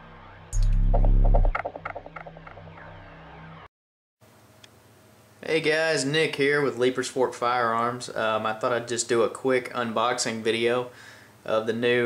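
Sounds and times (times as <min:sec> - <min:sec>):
steady low tone: 0:00.0 - 0:02.8
deep boom: 0:00.5 - 0:02.2.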